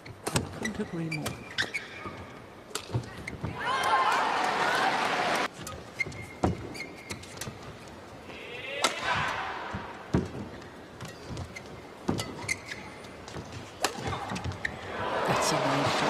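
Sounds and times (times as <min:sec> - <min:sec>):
arena crowd noise: 0:03.2 - 0:05.5, 0:13.8 - 0:16.0
rackets hitting shuttlecock: 0:12.1 - 0:14.5.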